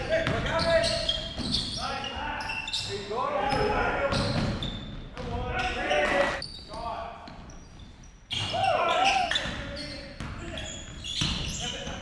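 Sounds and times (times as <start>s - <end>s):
sneaker squeaks: 0.0s - 12.0s
players shouting: 5.3s - 6.4s.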